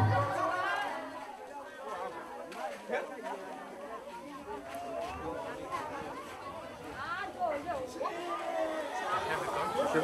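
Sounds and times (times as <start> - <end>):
faint voices over loudspeakers: 0.0 - 10.0.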